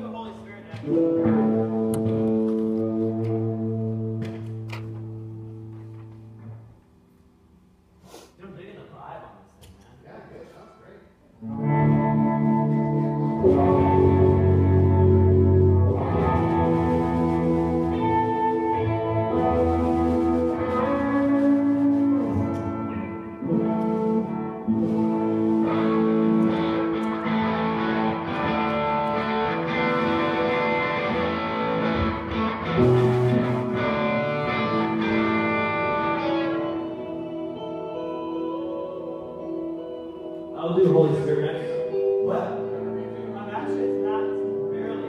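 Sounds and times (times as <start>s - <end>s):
electric guitar chords with echo: 0.0s - 7.1s, 11.4s - 45.0s.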